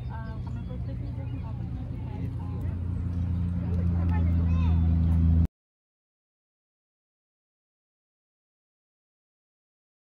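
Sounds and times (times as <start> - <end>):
faint voices: 0.0 - 5.2
vehicle engine hum: 0.0 - 5.5.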